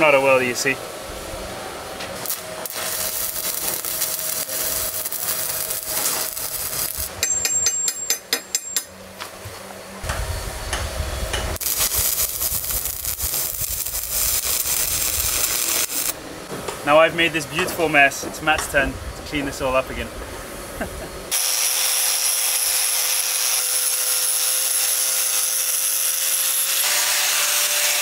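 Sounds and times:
welding arc crackling and hissing: 0:02.0 - 0:07.4, 0:10.0 - 0:16.2, 0:16.9 - 0:28.0.

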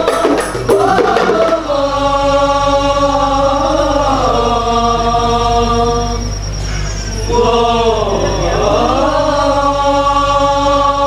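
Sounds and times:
boys singing unaccompanied: 0:00.0 - 0:11.0.

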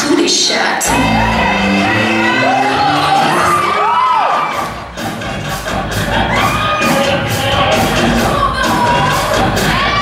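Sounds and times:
pop dance track over sound system: 0:00.0 - 0:10.0
audience cheering and whooping: 0:00.8 - 0:05.0, 0:05.9 - 0:10.0.

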